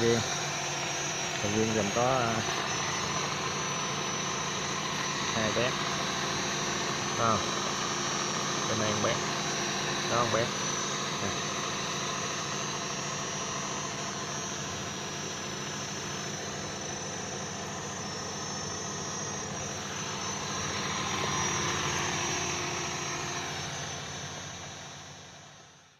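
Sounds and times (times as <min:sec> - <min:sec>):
water pump running: 0:00.0 - 0:25.5.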